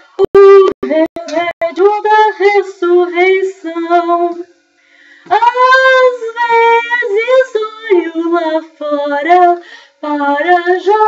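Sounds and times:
woman singing: 0:00.0 - 0:04.6, 0:05.3 - 0:11.0.

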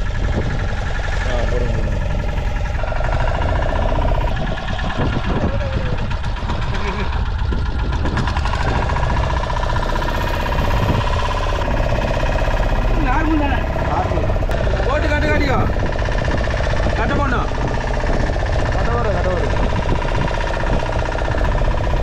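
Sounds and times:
outboard motor running: 0:00.0 - 0:22.0.

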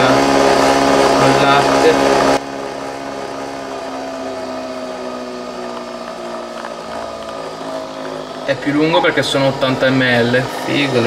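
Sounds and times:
coffee machine humming: 0:00.0 - 0:11.0.

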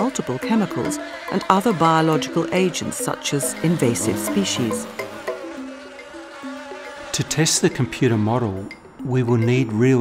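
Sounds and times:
flying insects buzzing: 0:00.0 - 0:08.6
background music of held notes: 0:00.0 - 0:10.0.

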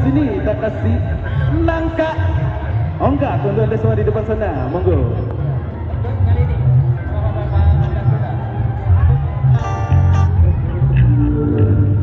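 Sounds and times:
pulsing bass beat: 0:00.0 - 0:12.0
street band music over loudspeakers: 0:00.0 - 0:12.0.

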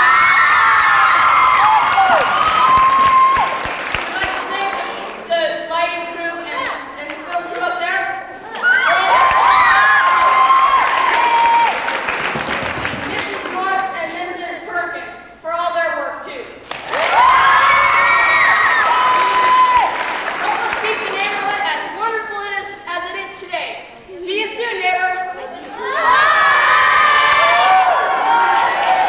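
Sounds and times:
high cheer: 0:00.0 - 0:05.2, 0:08.5 - 0:13.2, 0:16.7 - 0:21.4, 0:25.6 - 0:29.0
crowd applause: 0:00.0 - 0:05.3, 0:08.6 - 0:13.6, 0:16.7 - 0:21.7, 0:25.8 - 0:29.0.

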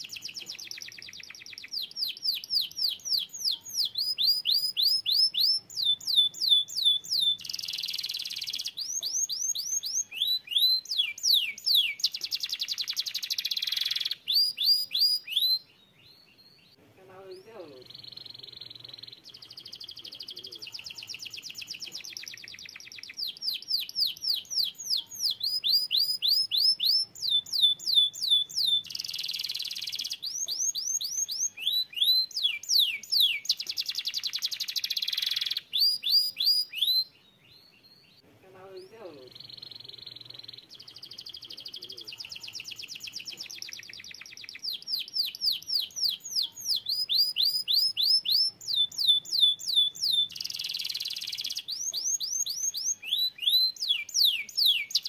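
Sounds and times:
canary singing: 0:00.0 - 0:55.0.

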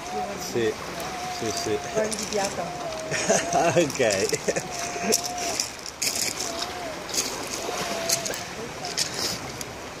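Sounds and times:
waves washing onto pebbles: 0:00.0 - 0:10.0.

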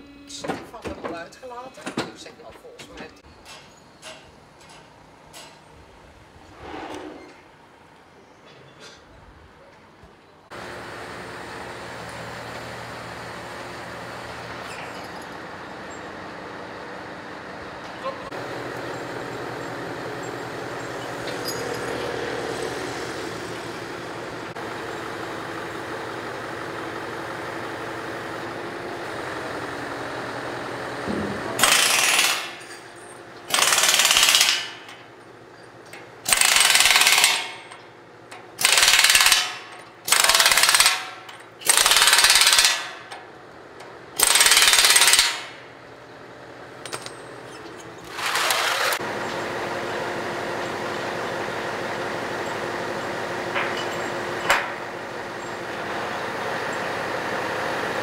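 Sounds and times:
engine hum: 0:03.1 - 0:58.0
pneumatic impact wrench hammering: 0:31.0 - 0:35.1, 0:35.9 - 0:43.3, 0:44.2 - 0:45.7, 0:46.8 - 0:49.0, 0:53.6 - 0:54.8.

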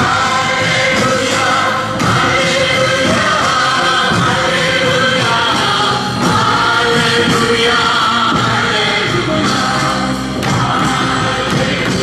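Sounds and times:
group singing worship song: 0:00.0 - 0:12.0.

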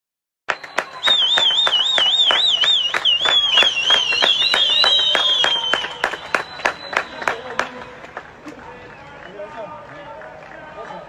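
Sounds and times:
people clapping in rhythm: 0:00.5 - 0:11.0.

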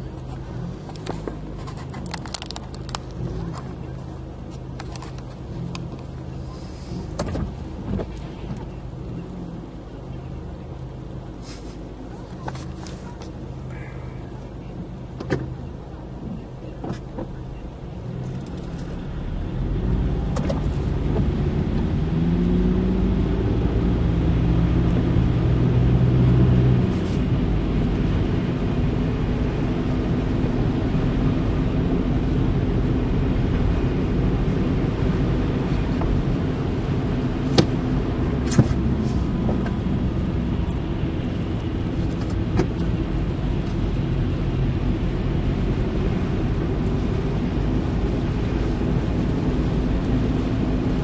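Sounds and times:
car engine: 0:00.0 - 0:51.0
tyres on wet snowy road: 0:00.0 - 0:51.0.

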